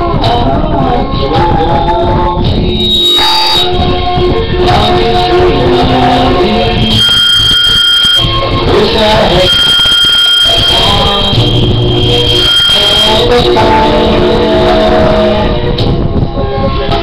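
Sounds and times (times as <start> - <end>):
karaoke backing track: 0.0 - 17.0
piercing high beep tone: 2.5 - 4.0, 5.8 - 14.2.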